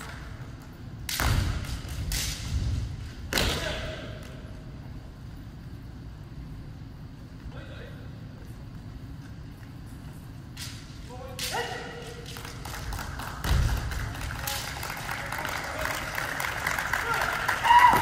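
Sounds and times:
murmur of hall: 10.9s - 18.0s
people shouting: 17.0s - 18.0s.

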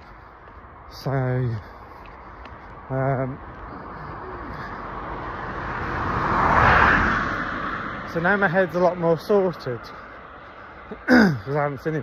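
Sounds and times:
vehicle passing by: 1.6s - 11.0s.

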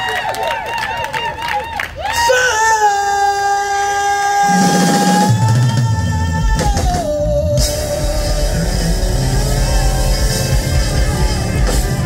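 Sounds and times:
drum kit: 4.4s - 12.0s
bass guitar: 4.5s - 12.0s.

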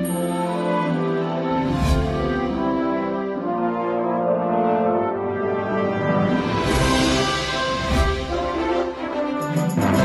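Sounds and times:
brass chords theme music: 0.0s - 10.0s.

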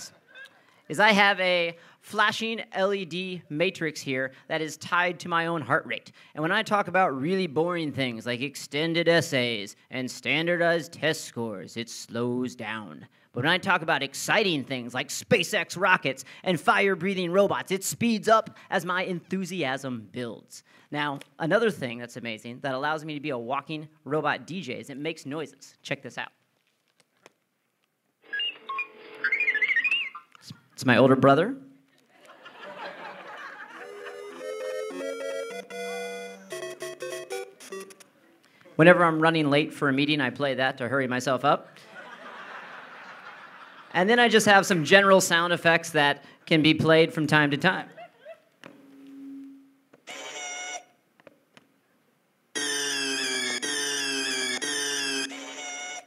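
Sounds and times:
electronic beeps and tones: 28.3s - 30.3s, 34.2s - 38.0s, 52.6s - 56.0s
electronic sound effects: 52.6s - 56.0s.

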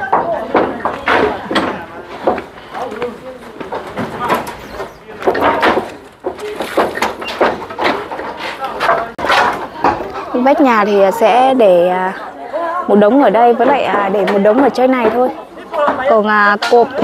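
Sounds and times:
people talking: 0.0s - 17.0s.

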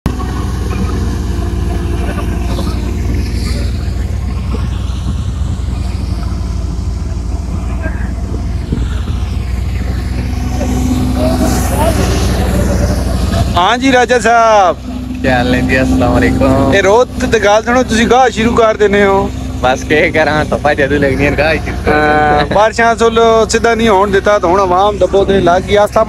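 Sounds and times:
thresher rumble: 0.0s - 26.0s
tractor engine drone: 0.0s - 26.0s.

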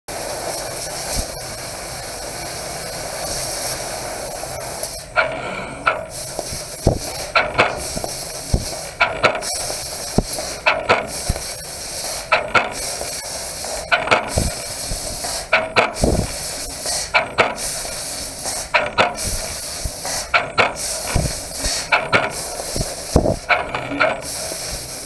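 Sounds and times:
assist gas hissing: 0.1s - 25.0s.

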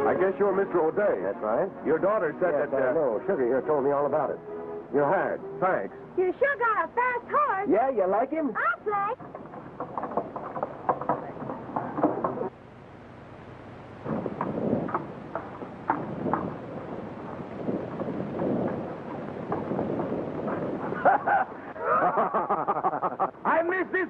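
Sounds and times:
horse hoofbeats on dirt: 8.6s - 12.5s, 14.0s - 21.4s.

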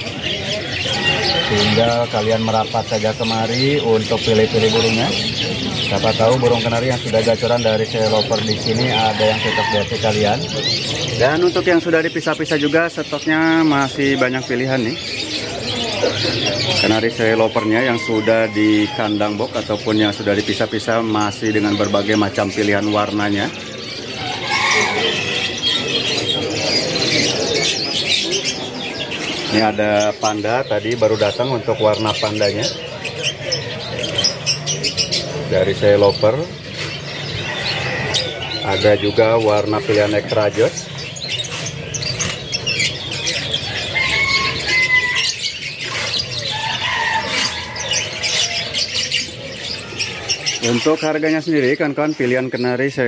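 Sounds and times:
canaries chirping and twittering: 0.0s - 53.0s.

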